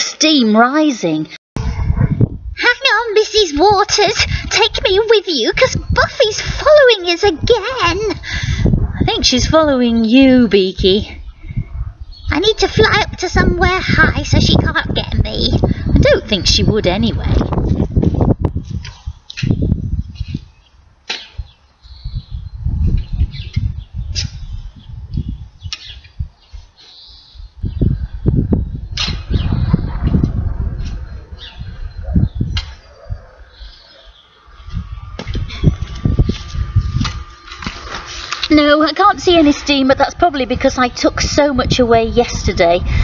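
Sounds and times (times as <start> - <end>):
wind buffeting microphone: 1.6 - 43.0
garden fork digging manure: 36.3 - 39.8.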